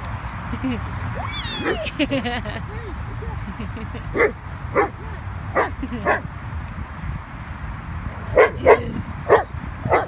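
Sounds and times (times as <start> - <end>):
dog barking: 4.2 - 5.0, 8.4 - 10.0.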